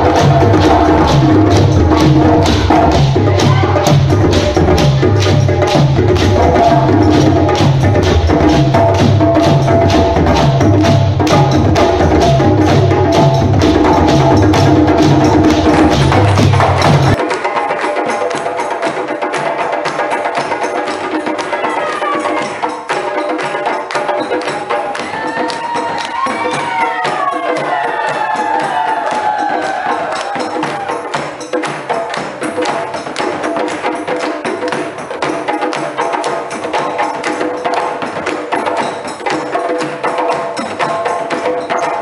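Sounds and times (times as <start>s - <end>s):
drum ensemble playing fast rhythm: 0.0s - 42.0s.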